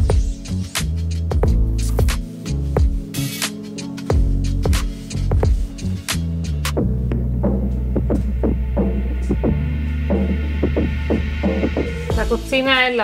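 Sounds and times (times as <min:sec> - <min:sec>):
deep held bass line: 0:00.0 - 0:03.1, 0:04.1 - 0:13.0.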